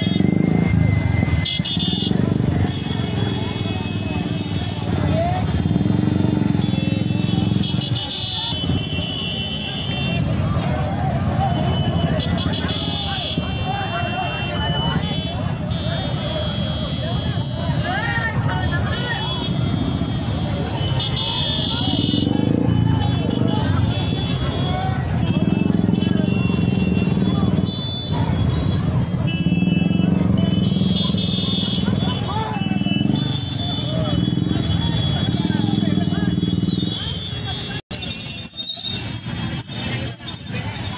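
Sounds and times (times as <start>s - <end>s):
crowd talking and shouting: 0.0s - 40.9s.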